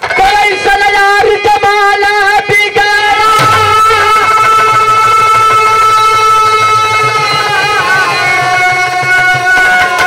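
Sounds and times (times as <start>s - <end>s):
instrumental accompaniment: 0.0s - 10.0s
man singing long high note: 0.2s - 10.0s.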